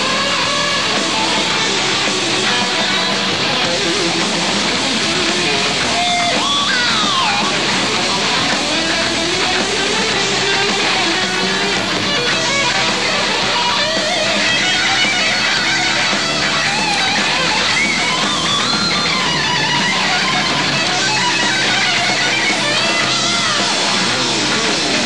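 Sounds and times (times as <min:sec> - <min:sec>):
bass: 0:00.0 - 0:25.0
bending lead guitar line: 0:00.0 - 0:25.0
drums: 0:00.0 - 0:25.0
electric guitar: 0:00.0 - 0:25.0.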